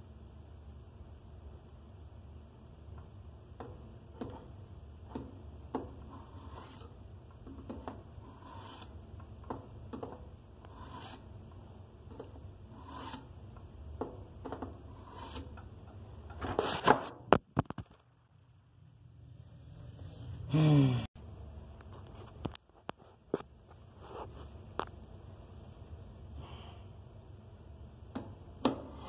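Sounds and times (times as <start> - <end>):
knife blade scraping on sharpener: 6.1 - 7.0, 8.3 - 9.0, 10.7 - 11.3, 12.8 - 13.3, 15.0 - 15.6.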